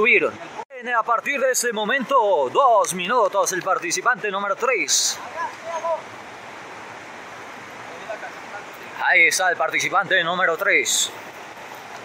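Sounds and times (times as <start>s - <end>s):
river water over rocks: 0.0s - 12.0s.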